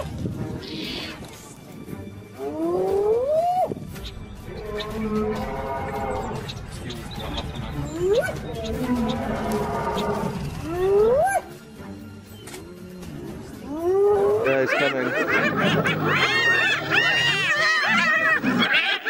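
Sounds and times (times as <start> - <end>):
hyenas giggling calls: 13.7 - 19.0.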